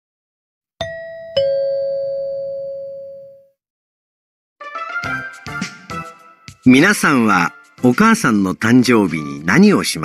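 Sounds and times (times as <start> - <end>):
two-tone ding-dong chime: 0.8 - 3.4.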